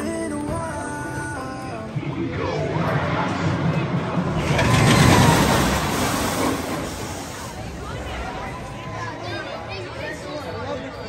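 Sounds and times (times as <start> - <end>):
roller coaster train rumbling: 0.6 - 10.8.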